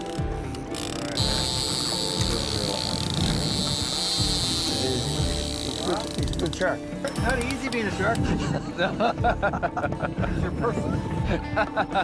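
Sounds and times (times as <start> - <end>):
fishing reel drag buzzing: 0.0 - 8.1.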